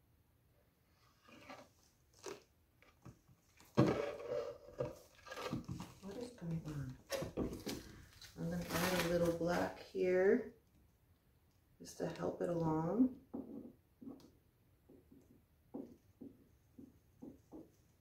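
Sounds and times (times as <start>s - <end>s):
woman talking: 6.0s - 7.0s, 8.4s - 10.6s, 11.8s - 13.2s.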